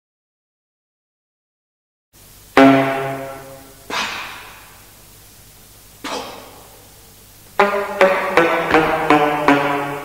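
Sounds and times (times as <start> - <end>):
sharp noisy attack: 2.2 - 5.0, 5.9 - 10.0
alto saxophone sustained note: 2.6 - 4.0, 7.5 - 10.0.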